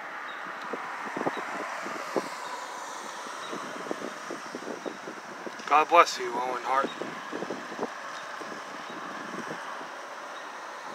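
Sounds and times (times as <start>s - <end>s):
car passing: 0.0s - 10.9s
wind buffeting microphone: 0.0s - 10.9s.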